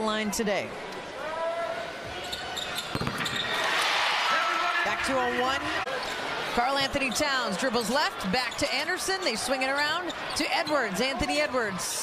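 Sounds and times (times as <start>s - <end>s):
crowd cheering: 3.0s - 12.0s.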